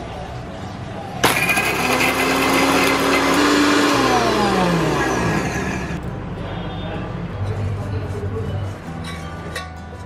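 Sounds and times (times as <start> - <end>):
mixer grinder motor whining: 1.2 - 6.0.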